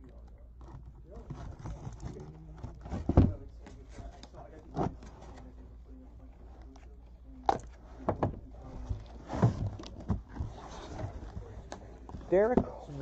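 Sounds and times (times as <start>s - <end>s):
cardboard flaps scraping: 8.0s - 13.0s.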